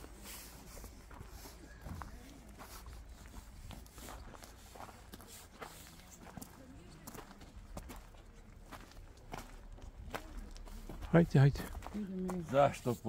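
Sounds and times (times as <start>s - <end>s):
faint voices: 0.0s - 13.0s
footsteps on gravel: 0.0s - 13.0s.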